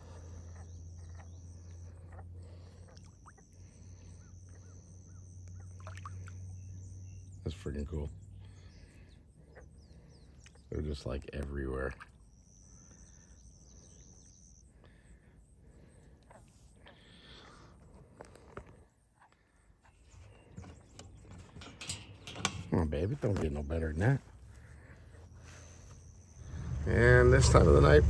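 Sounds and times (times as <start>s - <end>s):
engine idling rumble: 20.3s - 28.0s.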